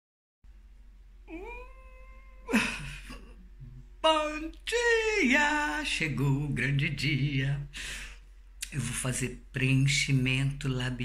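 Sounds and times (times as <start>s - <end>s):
woman humming: 1.3s - 3.9s.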